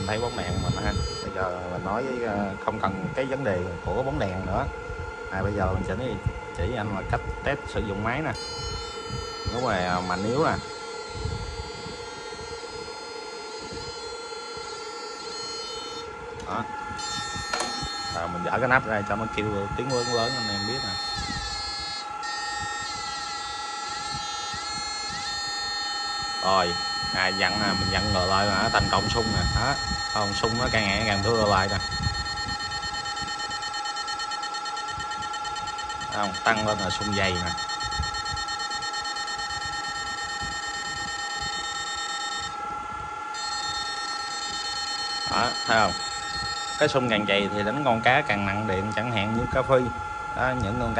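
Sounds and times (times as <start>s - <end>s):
inverter electrical whine: 0.0s - 50.9s.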